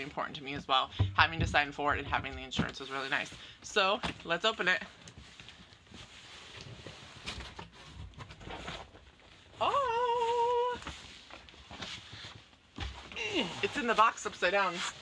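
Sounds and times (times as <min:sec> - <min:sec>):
cardboard rustling and scraping: 0:00.0 - 0:15.0
high-pitched vocal sound: 0:09.6 - 0:10.9.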